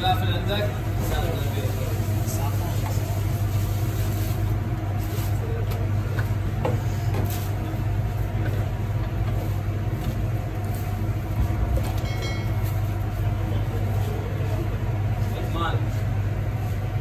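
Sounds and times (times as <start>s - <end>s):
kitchen machinery humming: 0.0s - 17.0s.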